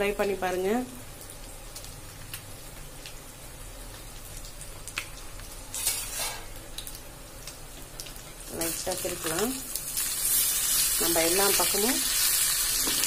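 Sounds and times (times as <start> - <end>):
fish sizzling in hot oil: 0.0 - 13.0
oil crackles: 1.1 - 13.0.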